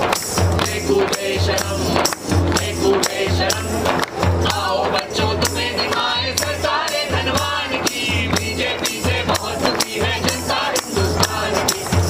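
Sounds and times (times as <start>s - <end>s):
hand drum beat: 0.0s - 12.0s
men singing together: 0.0s - 12.0s
tambourine jingle: 0.0s - 12.0s.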